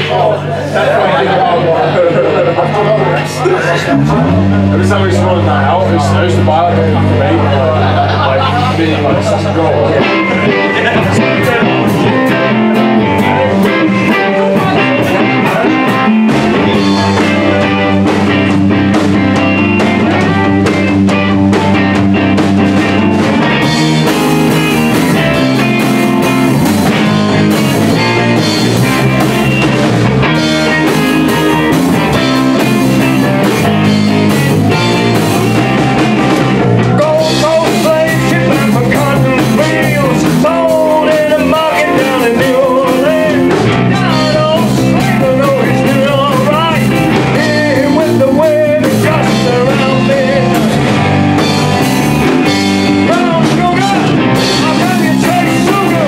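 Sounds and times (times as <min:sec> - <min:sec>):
live rock band playing: 0:00.0 - 0:56.0
wavering lead melody: 0:02.1 - 0:56.0.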